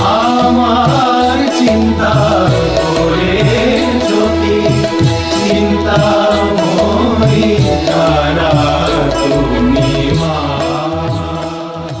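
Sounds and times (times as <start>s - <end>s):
chant-like devotional music: 0.0s - 12.0s.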